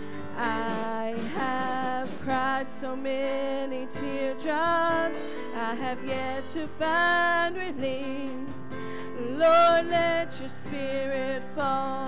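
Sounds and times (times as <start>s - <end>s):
instrumental accompaniment: 0.0s - 12.0s
women singing with vibrato: 0.2s - 12.0s.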